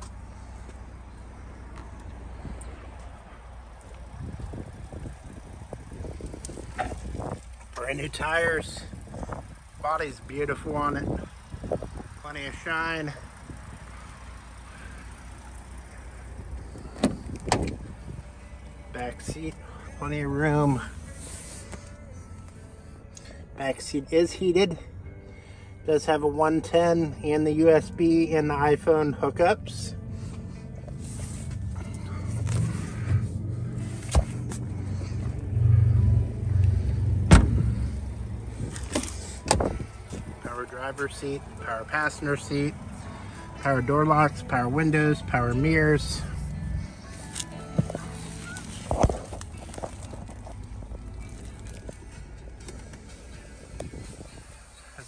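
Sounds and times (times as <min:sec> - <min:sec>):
steady low rumble: 0:00.0 - 0:23.6, 0:28.5 - 0:55.0
car engine idling: 0:00.0 - 0:55.0
car door latch clicks: 0:17.0 - 0:17.8, 0:37.3 - 0:37.7, 0:38.8 - 0:39.7.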